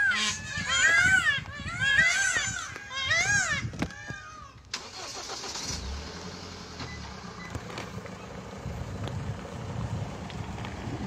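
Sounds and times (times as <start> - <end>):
road or wind noise: 0.0 - 11.0
vehicle engine rumbling: 0.0 - 11.0.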